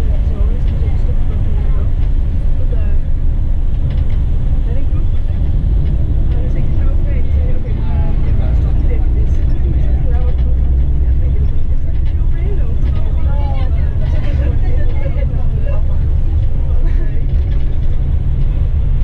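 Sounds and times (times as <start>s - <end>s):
coach engine and road rumble: 0.0s - 19.0s
passengers talking indistinctly: 0.0s - 19.0s.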